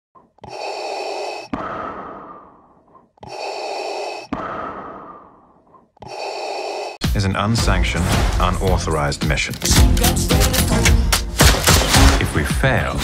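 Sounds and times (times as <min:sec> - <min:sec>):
respirator breathing: 0:00.2 - 0:07.0.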